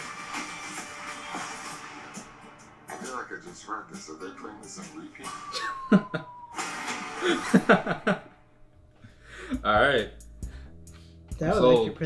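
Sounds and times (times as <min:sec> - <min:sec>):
movie trailer audio: 0:00.0 - 0:08.4
men chuckling and laughing: 0:05.6 - 0:06.4, 0:07.1 - 0:08.4.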